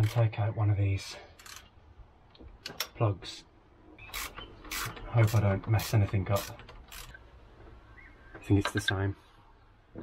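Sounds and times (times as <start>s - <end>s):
ratchet wrench metallic clicks: 1.4s - 1.7s, 4.1s - 7.2s.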